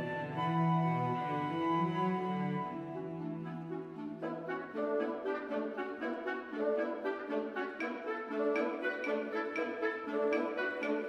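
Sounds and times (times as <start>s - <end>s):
orchestral music with horn: 0.0s - 11.0s.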